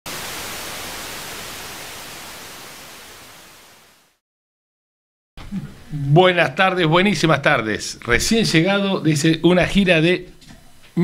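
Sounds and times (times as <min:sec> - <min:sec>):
television static hiss: 0:00.1 - 0:04.2, 0:05.6 - 0:11.0.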